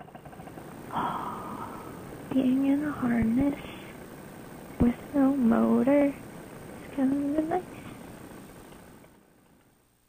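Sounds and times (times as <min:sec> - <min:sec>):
two-stroke engine idling: 0:00.0 - 0:06.5
breathy rush of air: 0:00.8 - 0:02.3.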